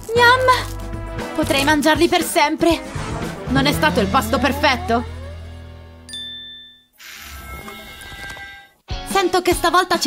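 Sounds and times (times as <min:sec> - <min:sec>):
background music: 0:00.0 - 0:06.4, 0:07.3 - 0:10.0
bell-like chime: 0:06.1 - 0:07.0.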